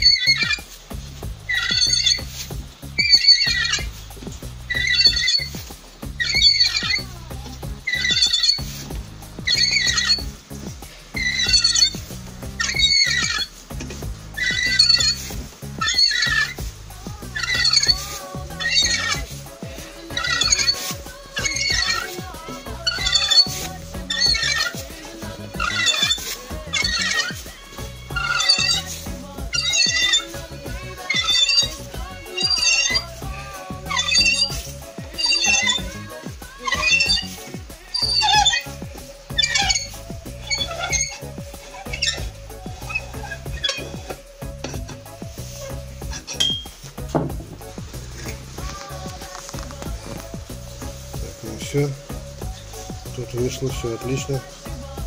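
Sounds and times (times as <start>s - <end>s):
hand reamer squealing in metal: 0.0s - 0.8s, 1.4s - 55.0s.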